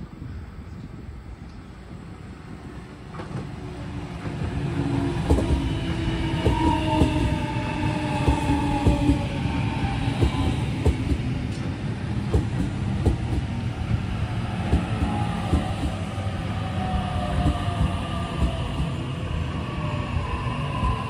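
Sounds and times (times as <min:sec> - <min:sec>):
train wheels rumbling on rail: 0:00.0 - 0:21.0
train whine: 0:00.0 - 0:21.0.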